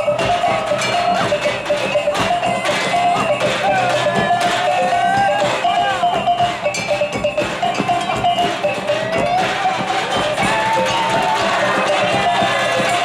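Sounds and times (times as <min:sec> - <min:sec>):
barrel drums beating: 0:00.0 - 0:13.0
small handheld gongs clanging: 0:00.0 - 0:13.0
wavering melody line: 0:00.0 - 0:13.0.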